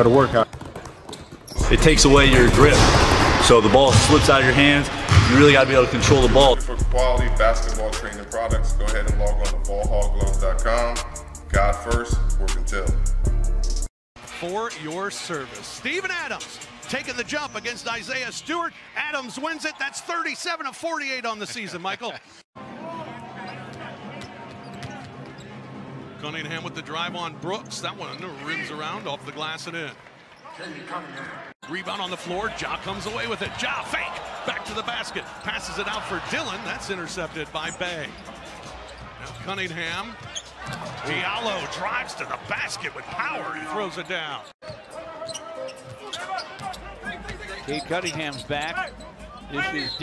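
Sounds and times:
basketball dribbled on hardwood: 0.4 - 1.6
basketball bouncing on wooden court: 0.4 - 4.3, 5.0 - 5.6
arena crowd noise: 1.6 - 8.5, 14.3 - 50.0.

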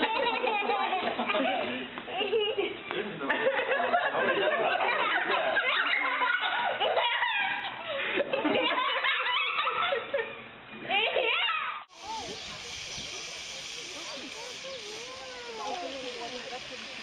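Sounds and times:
excited voices and laughter: 0.0 - 12.7
faint distant voices: 10.7 - 17.0
steady hiss: 11.9 - 17.0.

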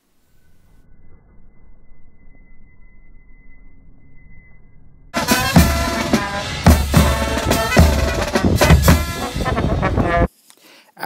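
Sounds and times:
marching band playing: 5.2 - 10.3.

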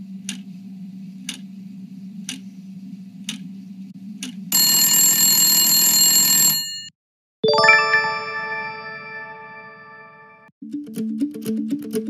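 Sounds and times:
rising chime notes: 7.4 - 10.5.

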